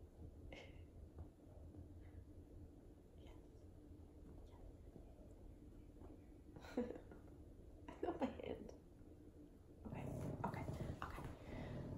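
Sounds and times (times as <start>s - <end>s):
puppy growling: 9.8s - 11.9s.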